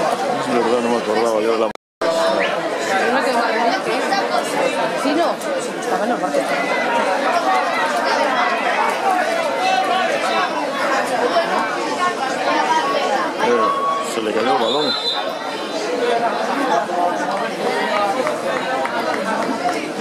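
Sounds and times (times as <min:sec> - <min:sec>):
people talking over one another: 0:00.0 - 0:20.0.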